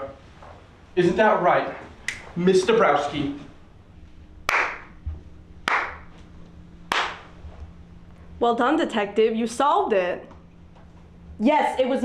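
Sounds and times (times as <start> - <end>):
hand claps with echo: 4.5 - 5.0, 5.6 - 6.2, 6.9 - 7.4.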